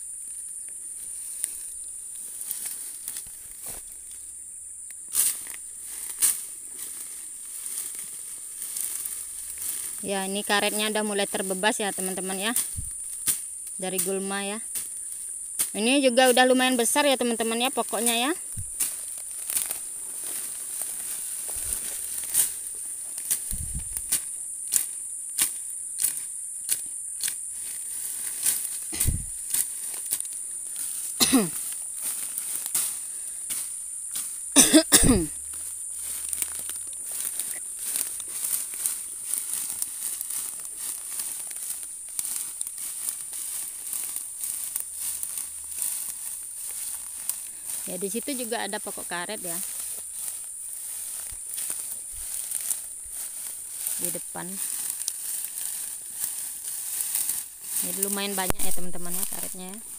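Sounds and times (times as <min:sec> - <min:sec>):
dry fern undergrowth crackling: 0:00.0 - 0:59.9
insects buzzing: 0:00.0 - 0:59.9.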